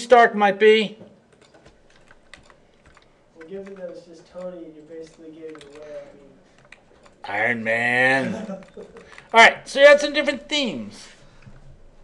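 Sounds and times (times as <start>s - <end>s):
mouse and keyboard clicks: 1.3s - 7.2s.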